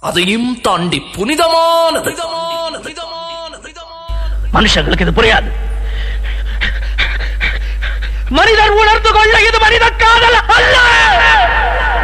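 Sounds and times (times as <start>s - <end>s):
steady low drone: 4.0s - 10.4s
man panting: 5.7s - 8.4s
man crying out: 7.0s - 12.0s.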